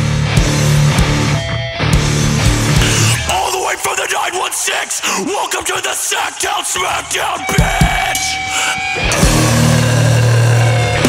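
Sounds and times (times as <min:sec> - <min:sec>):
heavy hardcore punk band chord: 0:00.0 - 0:05.2, 0:06.9 - 0:11.0.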